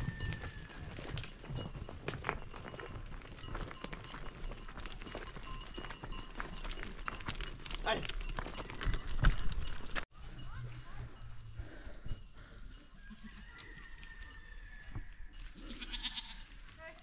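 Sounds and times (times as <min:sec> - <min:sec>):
hooves clattering on rocks: 0:00.0 - 0:17.0
goats bleating: 0:15.6 - 0:16.5.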